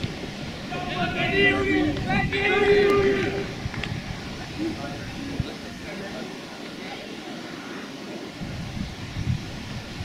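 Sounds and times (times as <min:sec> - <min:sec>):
wind buffeting microphone: 0:00.0 - 0:06.2, 0:08.2 - 0:10.0
faint steady hiss: 0:00.0 - 0:10.0.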